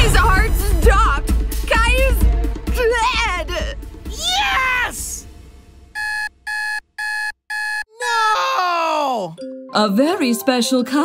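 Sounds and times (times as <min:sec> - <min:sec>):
man yelling: 0:02.9 - 0:05.2, 0:07.9 - 0:09.4
alarm clock beeping: 0:06.0 - 0:07.9.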